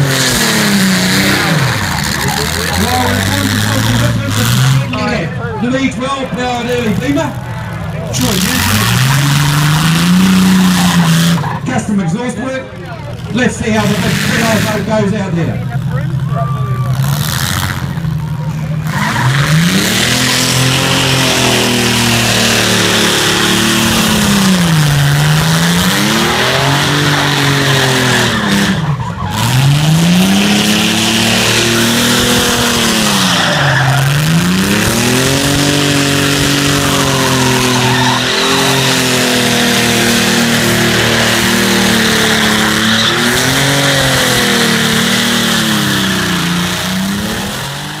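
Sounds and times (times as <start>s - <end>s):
car engine revving hard: 0.0s - 12.6s, 13.4s - 16.2s, 16.9s - 48.0s
tyres squealing while spinning: 42.3s - 43.8s.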